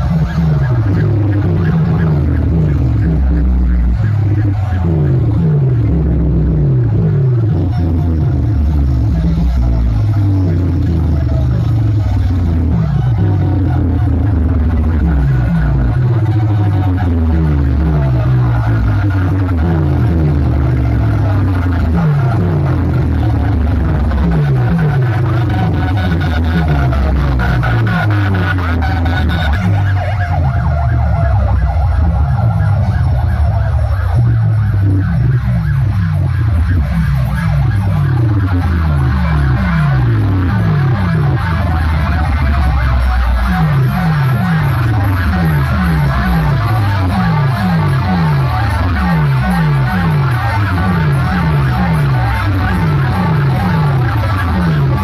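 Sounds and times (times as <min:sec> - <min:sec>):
loud dj music with heavy bass: 0:00.0 - 0:55.0
siren-like falling pitch sweeps: 0:00.0 - 0:55.0.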